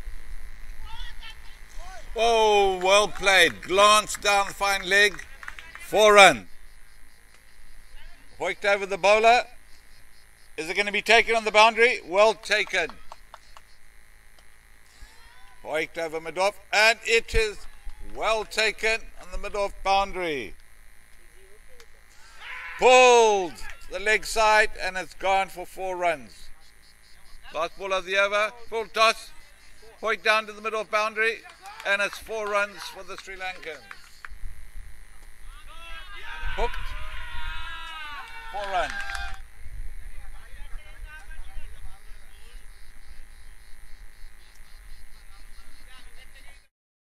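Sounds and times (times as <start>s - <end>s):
faint electrical hum: 0.0s - 46.7s
voices: 0.7s - 13.7s, 14.4s - 43.6s, 44.3s - 46.7s
commentator speaking: 0.9s - 6.4s.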